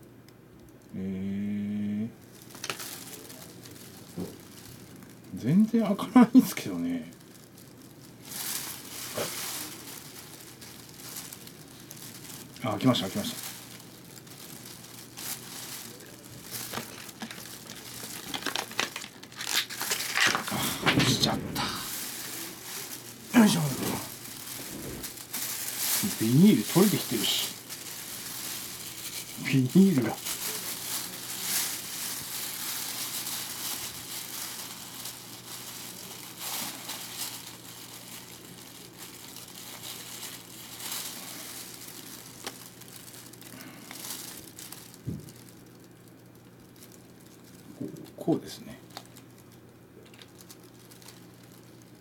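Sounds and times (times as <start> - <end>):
plastic packaging crinkling: 2.2 - 52.0.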